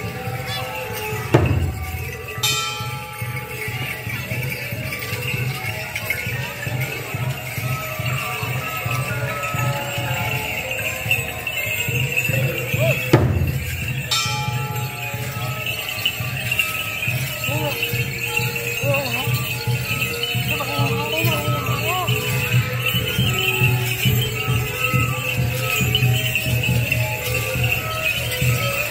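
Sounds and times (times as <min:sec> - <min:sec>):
held melodic tones: 0:00.0 - 0:28.9
low drum beats: 0:01.2 - 0:02.9, 0:12.3 - 0:15.4
ringing metallic strike: 0:10.4 - 0:28.9.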